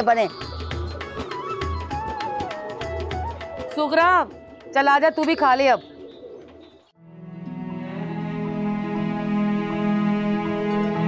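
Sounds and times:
pigeons cooing: 0:00.3 - 0:06.9
slow music of sustained tones: 0:07.0 - 0:11.0.

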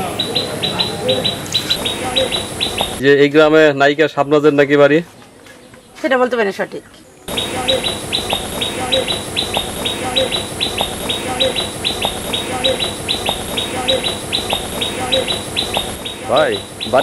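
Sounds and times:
steady high hiss: 0:00.0 - 0:03.0, 0:07.3 - 0:17.0
birds chirping: 0:00.0 - 0:03.1, 0:05.5 - 0:17.0.

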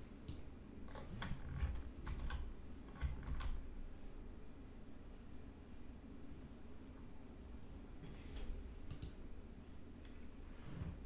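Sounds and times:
keyboard keys clicking: 0:00.3 - 0:03.6.

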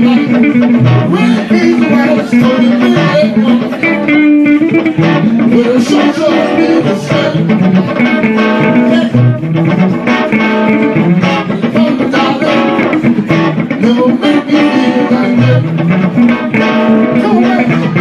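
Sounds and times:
person singing: 0:00.0 - 0:09.9, 0:10.5 - 0:18.0
electric guitars playing slow blues: 0:00.0 - 0:18.0.

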